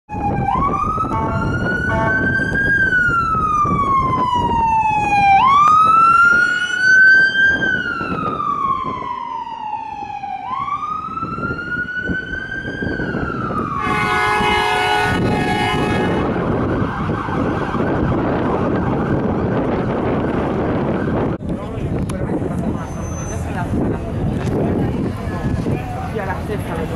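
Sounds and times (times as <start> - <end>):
ambulance siren wailing: 0.1 - 21.4
horn blasts: 1.1 - 2.3, 13.8 - 16.4.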